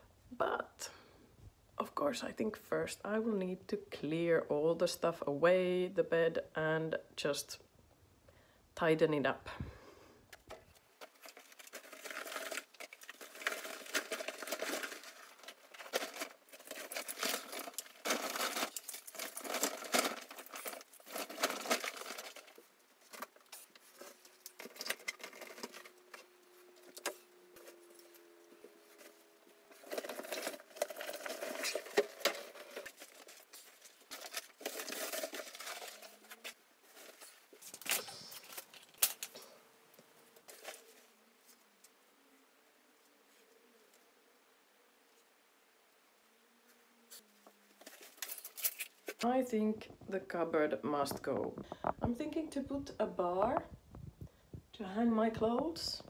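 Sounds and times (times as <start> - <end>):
gear rustling and clattering: 10.7 - 39.4.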